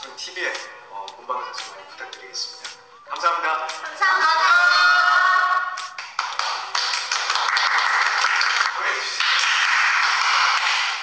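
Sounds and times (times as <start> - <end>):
group clapping: 5.8 - 11.0.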